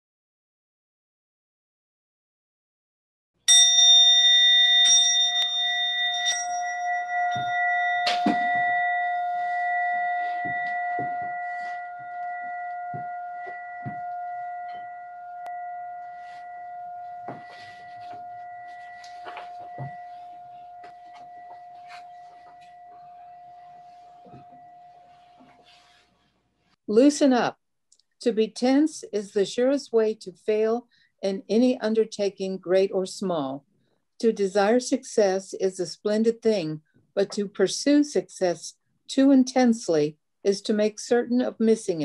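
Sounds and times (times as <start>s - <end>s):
bell ringing: 3.5s - 25.7s.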